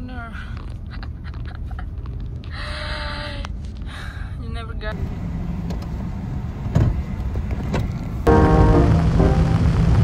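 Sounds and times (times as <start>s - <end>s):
low rumble inside car: 0.0s - 10.0s.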